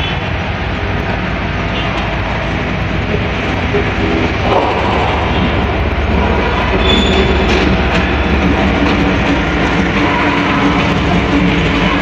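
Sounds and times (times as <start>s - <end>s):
faint engine drone: 0.0s - 12.0s
train rumbling past: 0.0s - 12.0s.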